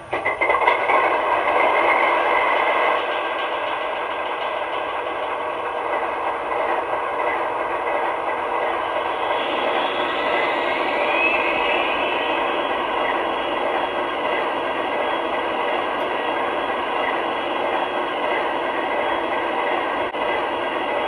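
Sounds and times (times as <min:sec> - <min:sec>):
model turbine sound rushing: 0:00.8 - 0:20.8
rising whine: 0:04.3 - 0:20.0.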